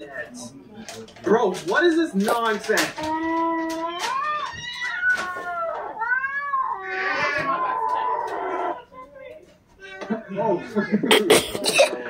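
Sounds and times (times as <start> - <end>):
cat meowing through speaker: 3.3 - 8.8.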